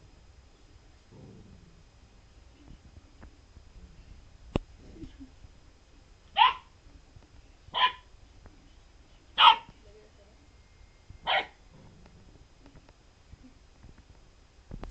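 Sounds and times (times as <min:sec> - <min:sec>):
puppy barking: 0:06.4 - 0:06.7, 0:07.7 - 0:08.1, 0:09.4 - 0:09.7, 0:11.2 - 0:11.6.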